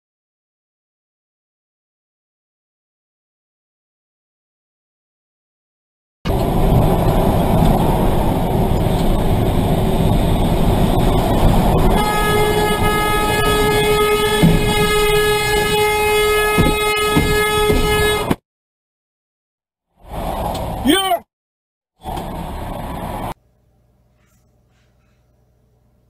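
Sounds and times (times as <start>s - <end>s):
road and engine noise in car: 6.3s - 18.4s, 20.0s - 21.2s, 22.0s - 23.4s
long vehicle horn blast: 11.8s - 18.4s.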